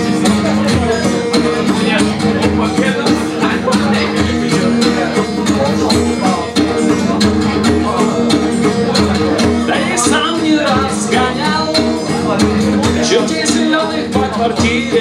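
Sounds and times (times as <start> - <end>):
acoustic guitar strumming: 0.0 - 15.0.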